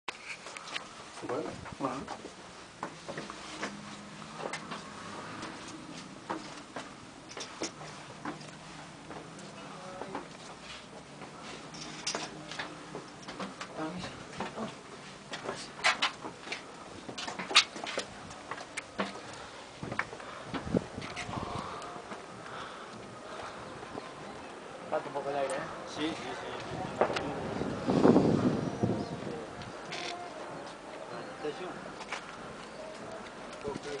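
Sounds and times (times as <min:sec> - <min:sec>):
steady background noise: 0:00.1 - 0:34.0
footsteps on stone stairs: 0:00.4 - 0:24.5.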